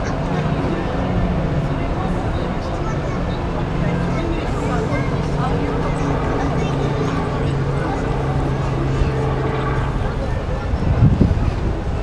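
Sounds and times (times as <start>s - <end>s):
people talking indistinctly: 0.0s - 12.0s
steady low hum: 0.0s - 12.0s.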